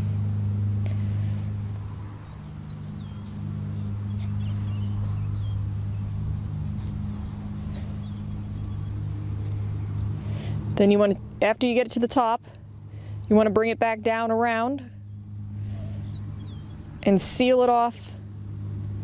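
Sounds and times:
low engine hum: 0:00.0 - 0:19.0.

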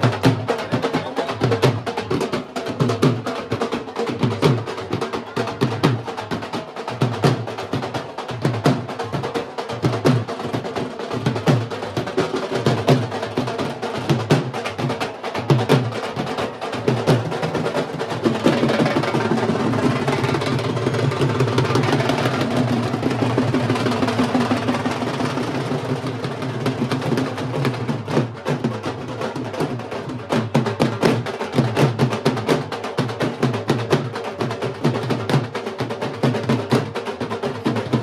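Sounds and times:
barrel drums beaten with sticks: 0:00.0 - 0:38.0.

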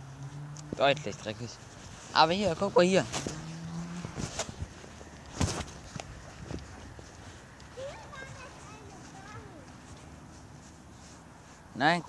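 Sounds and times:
footsteps on grass and gravel: 0:01.6 - 0:11.7.

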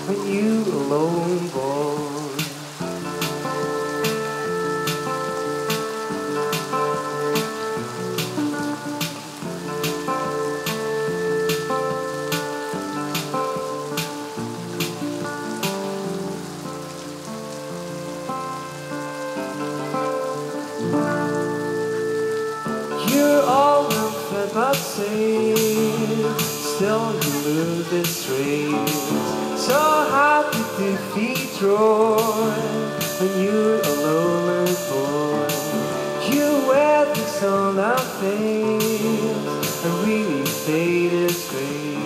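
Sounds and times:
fingerstyle acoustic guitar: 0:00.0 - 0:42.0.

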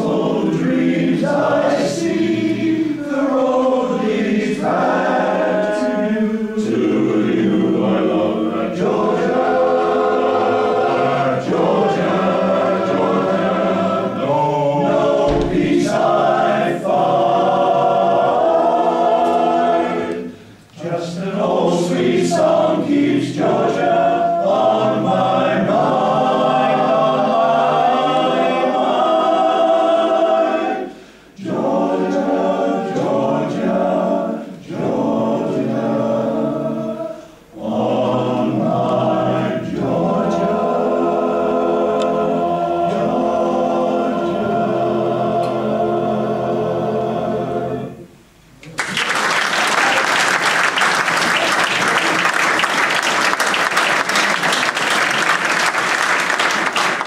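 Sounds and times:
male voice choir singing: 0:00.0 - 0:48.0.

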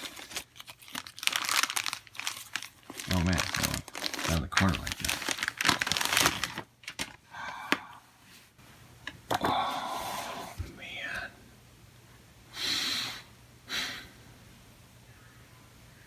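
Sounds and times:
plastic mailer bag crinkling: 0:00.0 - 0:07.2.

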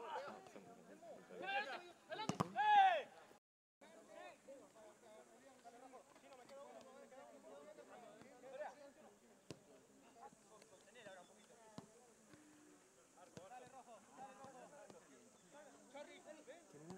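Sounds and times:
football being kicked: 0:02.2 - 0:02.6.

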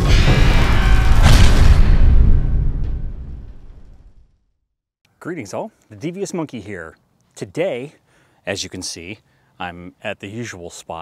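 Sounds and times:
low boom of intro sting: 0:00.0 - 0:04.3.

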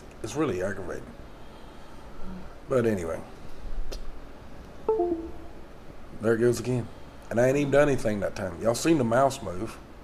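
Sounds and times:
computer alert chime: 0:04.9 - 0:05.6.

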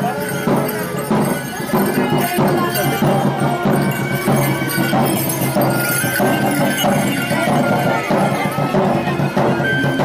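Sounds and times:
crowd voices: 0:00.0 - 0:10.0
hand drum beating: 0:00.0 - 0:10.0
high melody of short held notes: 0:00.0 - 0:10.0
procession music in the street: 0:00.0 - 0:10.0.

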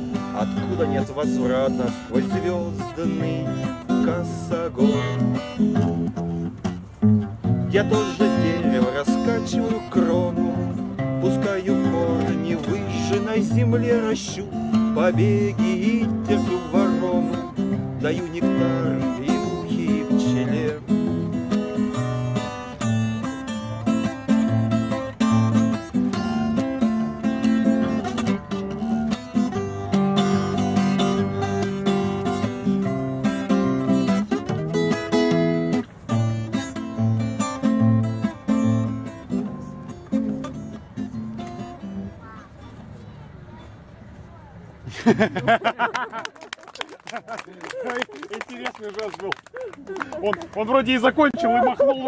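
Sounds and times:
classical guitar strumming chords: 0:00.0 - 0:43.9.

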